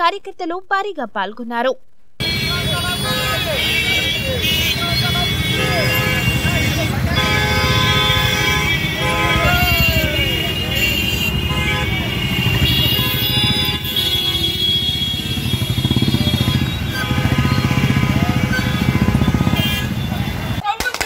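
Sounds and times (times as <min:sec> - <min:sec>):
motorcycles running slowly: 0:02.2 - 0:20.6.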